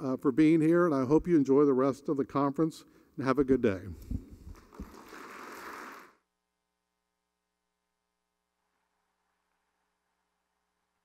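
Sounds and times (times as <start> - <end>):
papers thumping on microphone: 4.0 - 6.1
audience applause: 4.8 - 6.2.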